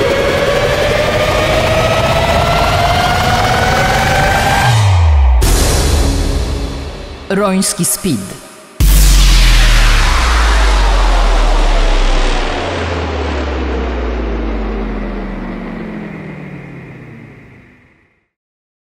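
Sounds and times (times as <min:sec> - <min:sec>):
low rumbling drone: 0:00.0 - 0:07.3, 0:08.4 - 0:18.2
deep cinematic boom: 0:01.6 - 0:07.3, 0:08.4 - 0:18.0.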